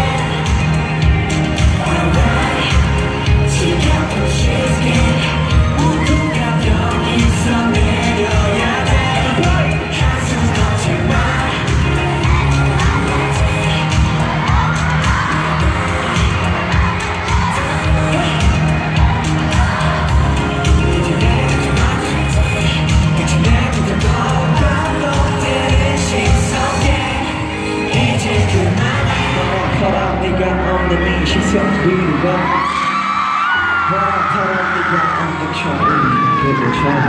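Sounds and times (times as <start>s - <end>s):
crowd cheering: 0.0s - 37.0s
pop music with singing and bass: 0.0s - 37.0s.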